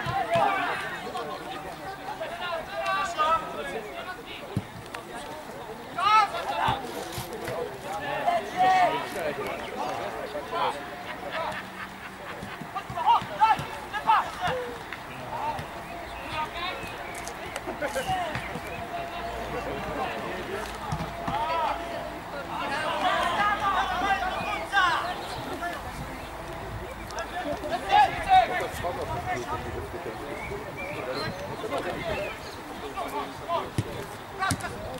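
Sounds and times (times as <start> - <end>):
players shouting short calls: 0.0 - 4.5, 5.2 - 29.7
outdoor background noise: 0.0 - 34.9.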